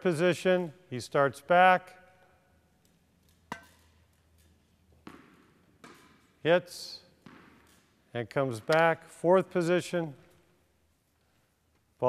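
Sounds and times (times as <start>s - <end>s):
racket hitting tennis ball: 3.5s - 4.0s, 4.9s - 6.4s, 7.0s - 8.0s
ball thump: 5.0s - 6.3s, 7.2s - 7.7s.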